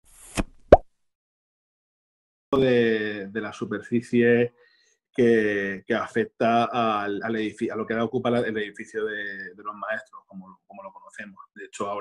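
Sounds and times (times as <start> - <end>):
sharp pitched plop: 0.3 - 0.9.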